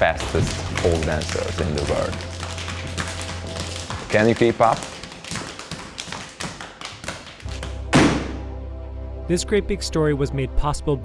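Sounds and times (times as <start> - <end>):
low bass drone: 7.8 - 10.6
hand slaps and boot strikes: 7.9 - 8.4.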